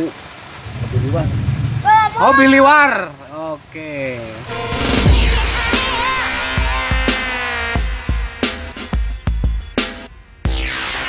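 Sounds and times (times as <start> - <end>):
rain hissing: 0.0 - 10.1
low rumble on microphone: 0.6 - 2.5
men shouting and whooping: 1.9 - 3.1.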